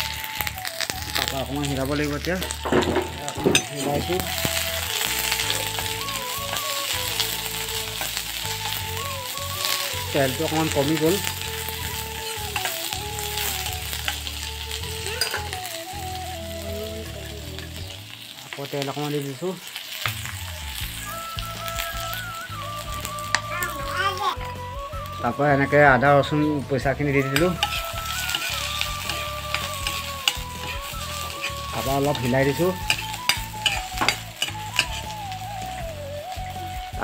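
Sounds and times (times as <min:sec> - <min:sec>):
spatula scraping wok: 0:00.0 - 0:21.2, 0:27.2 - 0:36.6
vegetables sizzling in oil: 0:00.0 - 0:37.0.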